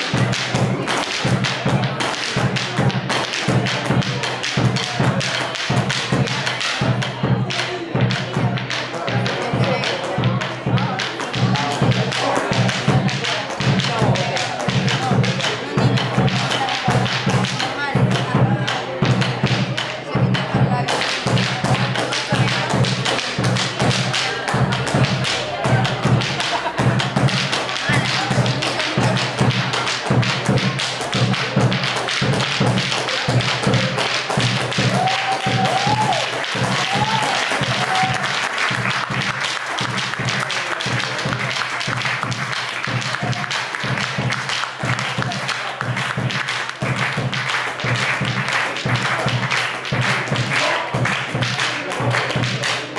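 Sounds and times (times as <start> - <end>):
drum struck with sticks: 0.0 - 52.9
rapid foot-stamping: 21.1 - 51.6.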